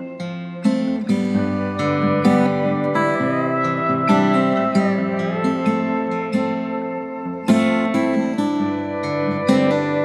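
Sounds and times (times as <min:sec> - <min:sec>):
acoustic guitar strummed: 0:00.0 - 0:10.0.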